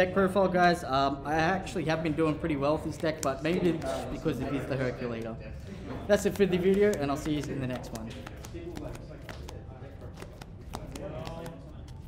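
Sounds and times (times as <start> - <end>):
cards being shuffled: 2.8 - 5.4, 6.1 - 12.0.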